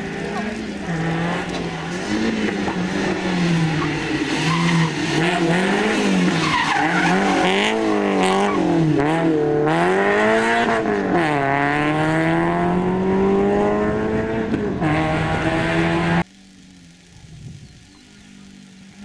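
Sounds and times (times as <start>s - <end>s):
car engine revving: 0.0s - 19.0s
tyre squeal: 6.3s - 8.7s.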